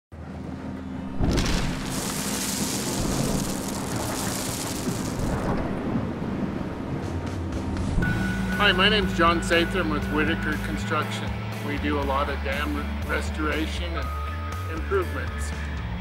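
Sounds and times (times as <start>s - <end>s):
background music with low notes: 0.2s - 4.7s, 5.6s - 16.0s
low rumble: 0.5s - 10.8s
loud noisy crash: 1.0s - 6.0s.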